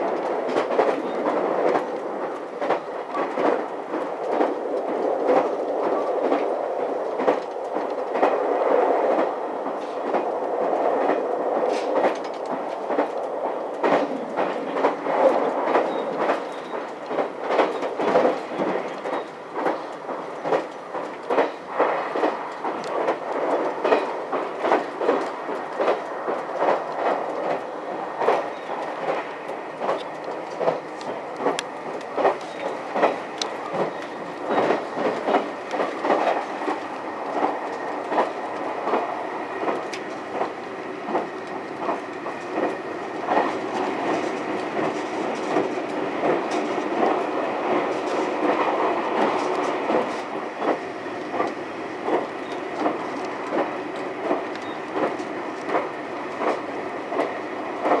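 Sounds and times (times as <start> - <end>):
train running rumble: 0.0 - 58.0
wheels clacking over rail joints: 9.1 - 58.0.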